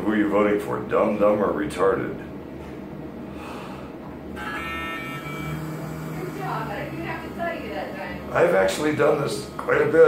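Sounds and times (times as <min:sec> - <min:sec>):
x-ray machine high whine: 0:00.0 - 0:10.0
low hum: 0:02.2 - 0:10.0.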